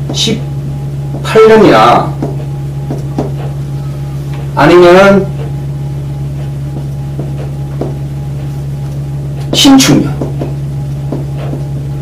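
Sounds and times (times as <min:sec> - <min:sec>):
low electrical hum: 0:00.0 - 0:12.0
marker writing on a whiteboard: 0:01.1 - 0:03.7, 0:09.4 - 0:11.7.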